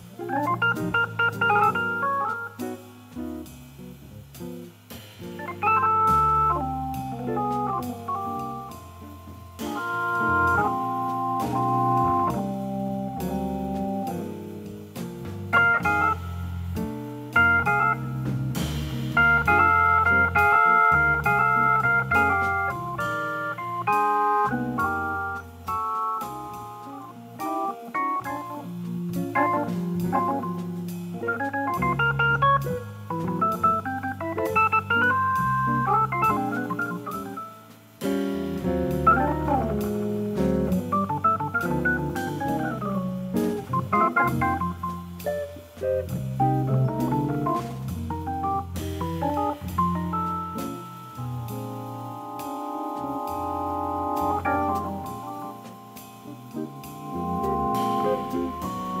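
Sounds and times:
bass line: 0.0 - 59.0
drums and cymbals: 0.0 - 59.0
organ playing jazz chords: 0.0 - 59.0.

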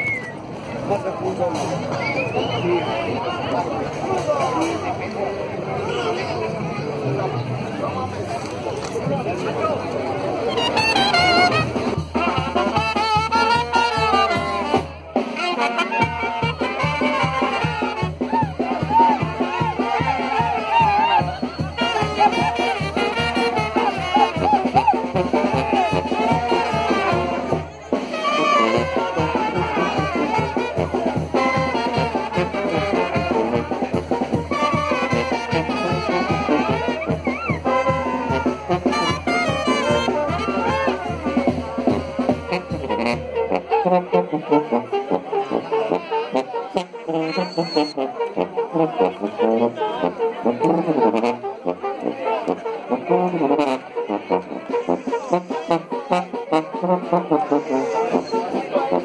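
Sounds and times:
brass band playing dance music: 9.2 - 59.0.

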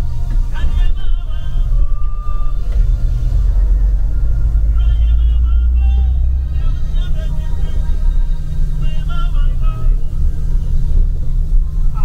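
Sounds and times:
bus engine and road rumble: 0.0 - 12.0.

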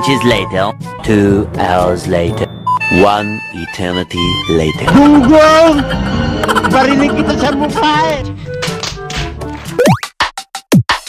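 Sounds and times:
voice: 0.0 - 6.0, 6.6 - 8.3
music: 0.0 - 11.0.

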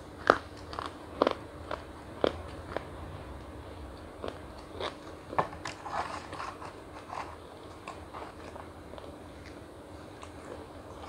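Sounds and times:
chocolate crunching: 0.0 - 2.9, 4.0 - 11.0.

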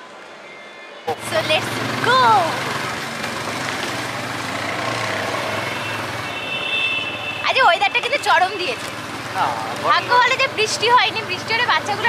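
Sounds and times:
wind and road noise: 1.0 - 12.0
motorcycle engine running: 1.2 - 6.3, 8.8 - 12.0.

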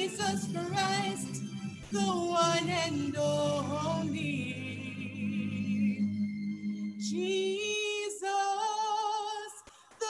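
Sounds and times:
woman singing unaccompanied: 0.0 - 6.0, 7.0 - 10.0.

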